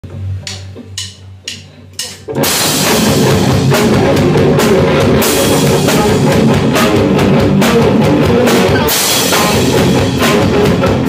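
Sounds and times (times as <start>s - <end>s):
drumstick count-in ticks: 0.4s - 2.3s.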